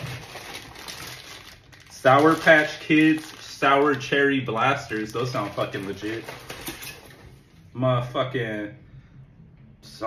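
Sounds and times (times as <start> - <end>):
plastic bags crinkling: 0.0 - 7.2.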